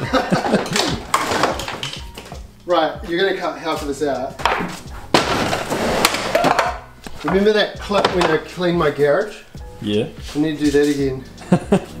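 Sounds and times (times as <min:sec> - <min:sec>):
gear clattering on metal shelving: 0:04.7 - 0:08.4.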